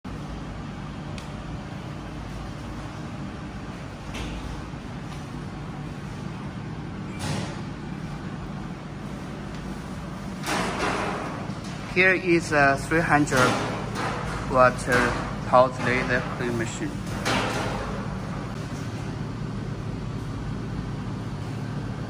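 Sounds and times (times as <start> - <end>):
workshop background rumble: 0.0 - 22.0.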